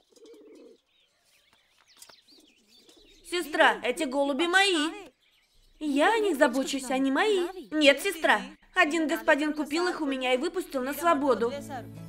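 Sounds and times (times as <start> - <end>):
pigeons cooing: 0.0 - 1.0, 2.3 - 3.8
small birds chirping: 0.0 - 11.5.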